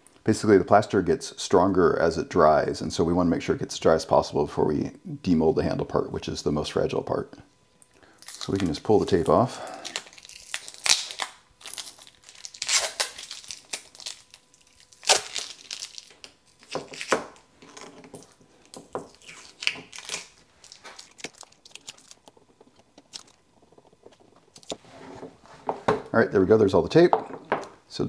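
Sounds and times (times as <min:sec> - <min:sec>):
tape ripping off plastic: 0:08.2 - 0:18.4, 0:19.0 - 0:22.3, 0:23.0 - 0:23.4.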